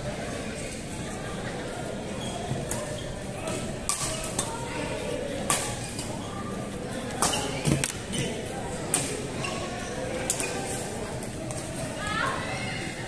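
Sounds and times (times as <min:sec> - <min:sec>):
murmur of voices: 0:00.0 - 0:13.0
rackets hitting shuttlecock: 0:03.8 - 0:04.5.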